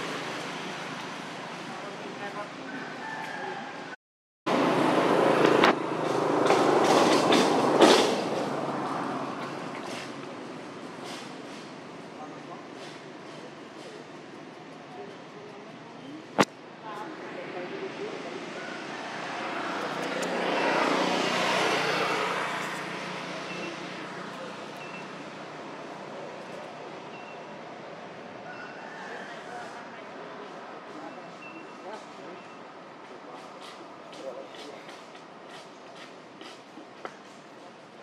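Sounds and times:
vehicle passing by: 0:00.0 - 0:03.0, 0:04.5 - 0:14.0, 0:17.0 - 0:27.0
outdoor background noise: 0:00.0 - 0:38.0.

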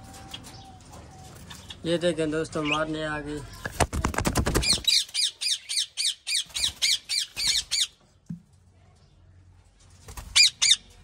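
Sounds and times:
birds calling softly: 0:00.0 - 0:04.0.

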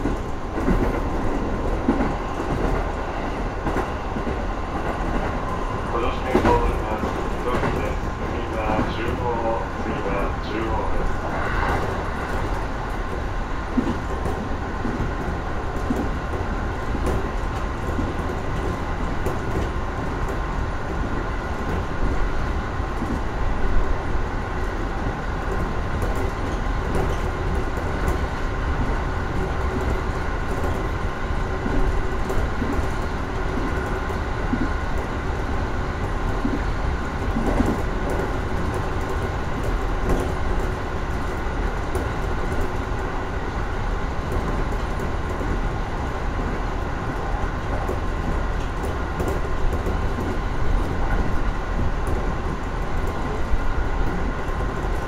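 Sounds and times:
track clacks: 0:00.0 - 0:55.0
train wheels rumbling on rail: 0:00.0 - 0:55.0.

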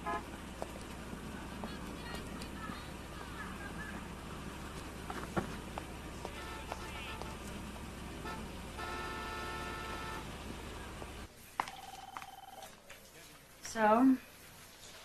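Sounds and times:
low street rumble: 0:00.0 - 0:15.0.

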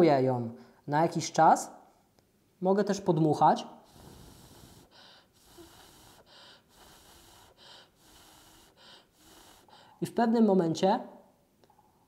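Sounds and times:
man blowing puffs of breath: 0:03.8 - 0:10.0.

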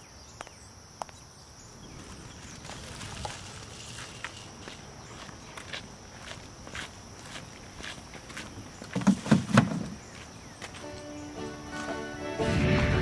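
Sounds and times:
high insect drone: 0:00.0 - 0:13.0
footsteps on pavement: 0:01.8 - 0:13.0.

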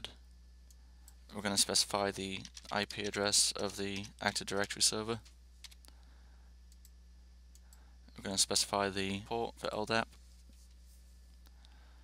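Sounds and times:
low electrical hum: 0:00.0 - 0:12.0
computer keyboard keystrokes: 0:02.3 - 0:05.9.

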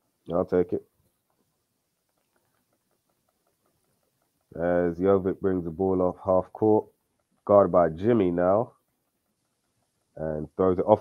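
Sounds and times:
faint ticks: 0:00.0 - 0:05.6, 0:06.5 - 0:11.0.

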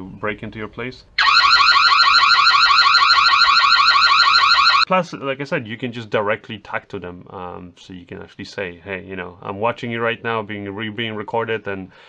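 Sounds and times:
security camera alarm siren: 0:01.2 - 0:04.9.

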